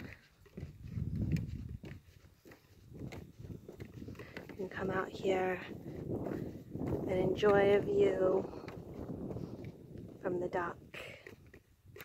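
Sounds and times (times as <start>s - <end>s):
footsteps on wooden planks: 0.0s - 12.0s.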